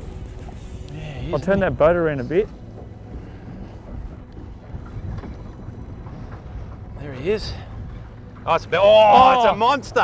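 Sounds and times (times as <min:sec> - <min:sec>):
small boat low rumble: 0:00.0 - 0:10.0
wind on microphone: 0:03.0 - 0:08.4.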